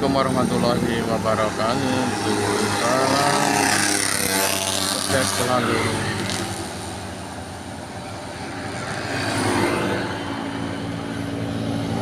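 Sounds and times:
scooter engines passing: 0.0 - 12.0.

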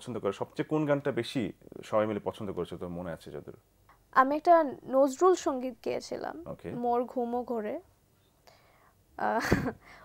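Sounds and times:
soft breath: 8.4 - 9.0.

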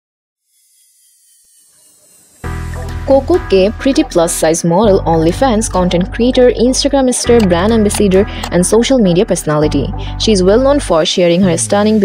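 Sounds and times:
low background music: 2.4 - 12.0.

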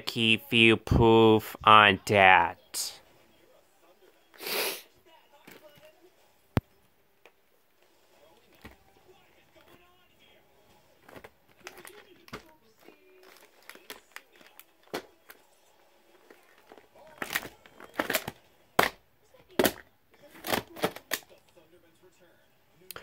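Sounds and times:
plastic case clicking and knocking: 17.2 - 21.3.

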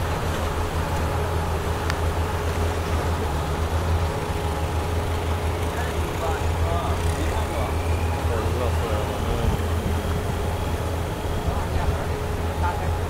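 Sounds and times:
speedboat engine drone: 0.0 - 13.0
water rushing: 0.0 - 13.0
wind: 0.0 - 13.0.

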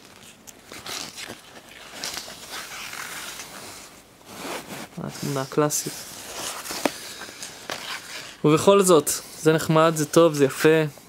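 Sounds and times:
paper booklet rustling: 0.0 - 10.8.

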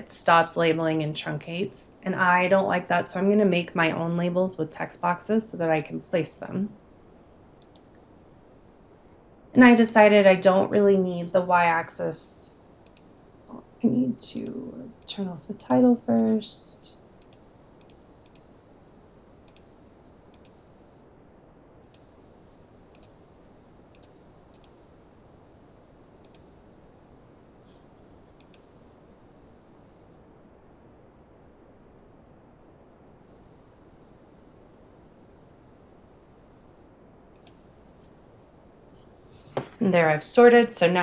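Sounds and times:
faint steady hiss: 0.0 - 41.0
computer mouse clicking: 7.6 - 7.9, 12.8 - 13.1, 17.2 - 18.5, 19.4 - 19.7, 20.3 - 20.6, 21.8 - 22.1, 22.9 - 23.2, 23.9 - 24.8, 26.2 - 26.5, 28.4 - 28.7, 37.3 - 37.6.

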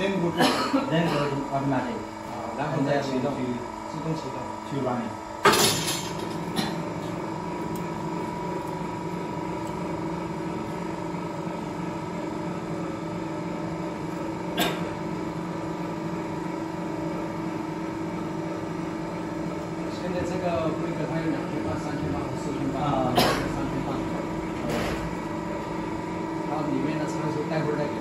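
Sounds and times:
winding machine humming: 6.2 - 28.0.

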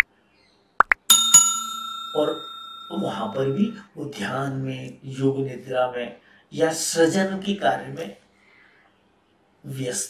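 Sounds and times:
notification bell ding: 1.1 - 3.8.

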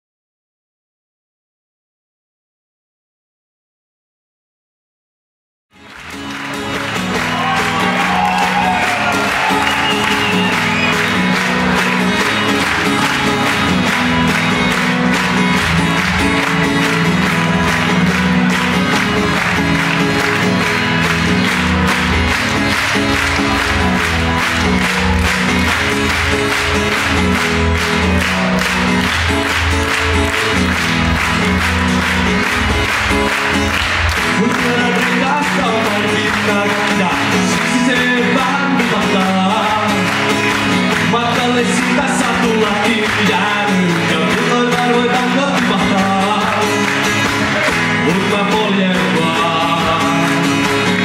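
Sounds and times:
crowd clapping and cheering: 5.7 - 51.0
live pop-rock band playing: 5.8 - 51.0.

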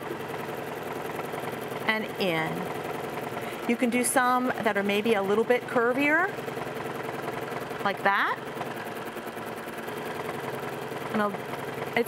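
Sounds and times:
sewing machine running: 0.0 - 12.0.

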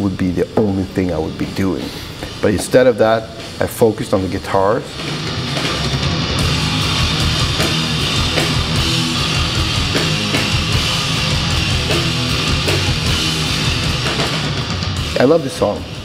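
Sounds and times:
heavy metal music: 0.0 - 16.0.

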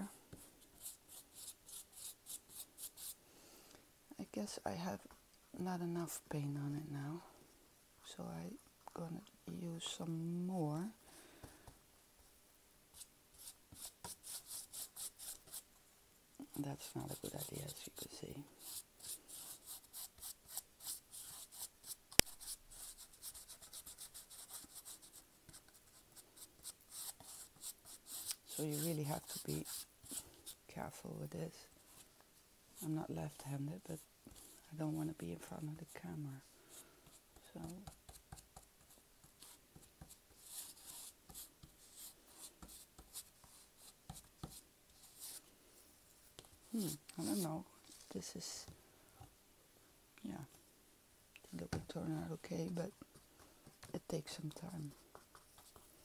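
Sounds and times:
paintbrush scratching on wood: 13.0 - 15.6, 16.7 - 30.6, 37.6 - 45.4, 46.6 - 48.1
paintbrush strokes on wood: 46.6 - 48.1.

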